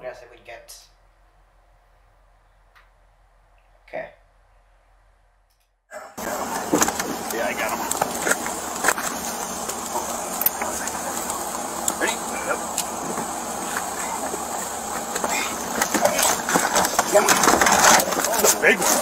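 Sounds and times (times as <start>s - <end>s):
indistinct voices: 5.9s - 19.0s
vehicle engine running: 6.1s - 19.0s.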